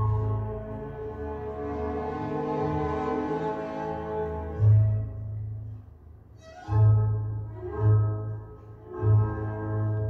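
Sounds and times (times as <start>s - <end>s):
orchestral strings: 0.0s - 10.0s.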